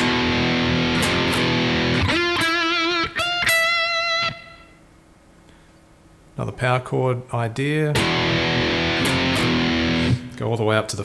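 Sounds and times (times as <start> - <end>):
distorted electric guitar chords: 0.0 - 4.8, 7.9 - 10.4.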